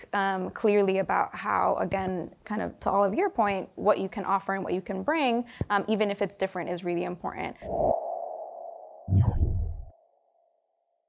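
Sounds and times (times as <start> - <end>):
whoosh: 7.6 - 9.9
steady electronic tone: 7.6 - 10.0
low rumble: 8.8 - 9.9.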